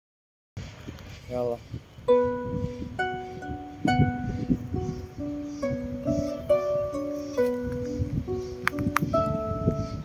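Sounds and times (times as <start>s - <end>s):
harp notes plucked slowly: 2.1s - 10.0s.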